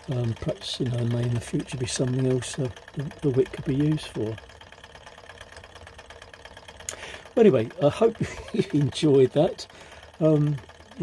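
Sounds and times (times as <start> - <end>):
small engine ticking rhythmically: 0.0 - 11.0.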